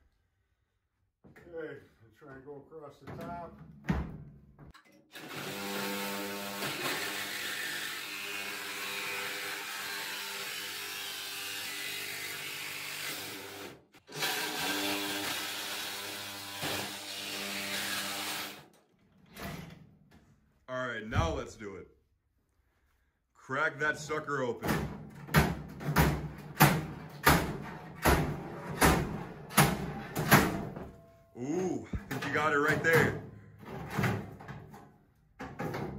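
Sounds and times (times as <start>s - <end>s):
reciprocating saw cutting steel: 5.1s - 18.6s.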